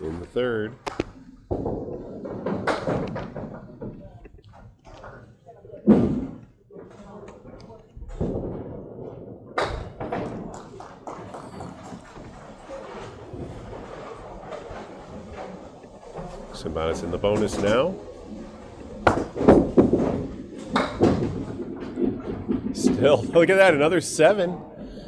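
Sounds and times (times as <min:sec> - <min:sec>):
bowling balls and pins knocking: 0:00.0 - 0:24.8.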